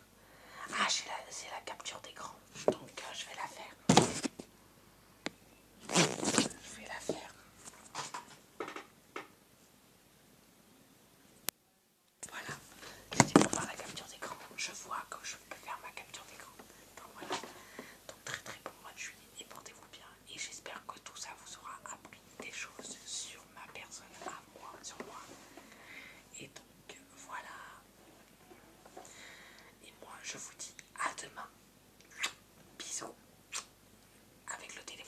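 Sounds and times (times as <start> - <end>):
person whispering: 0.6 - 3.8, 6.3 - 7.4, 12.2 - 25.4, 26.3 - 27.9, 29.8 - 33.7, 34.5 - 35.0.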